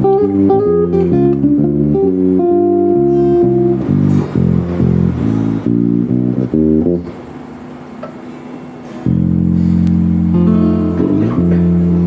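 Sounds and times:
acoustic guitar plucked notes: 0:00.0 - 0:12.0
electric bass notes: 0:00.0 - 0:12.0.

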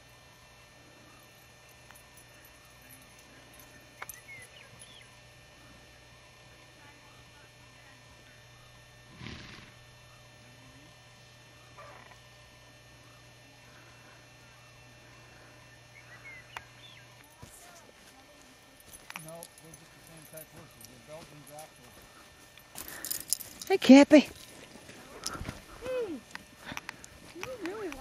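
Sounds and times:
distant voice-like calls: 0:11.6 - 0:12.3.

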